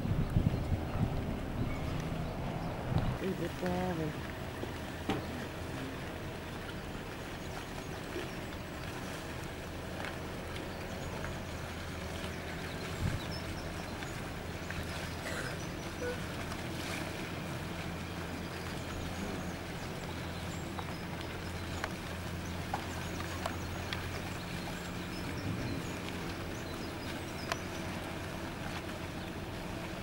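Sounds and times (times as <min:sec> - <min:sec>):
boat engine low hum: 0:00.0 - 0:30.0.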